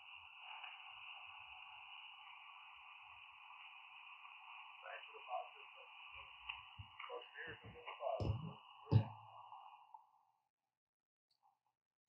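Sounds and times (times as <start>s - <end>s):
thin steady tone: 0.0s - 10.2s
faint radio receiver hiss: 0.0s - 10.3s.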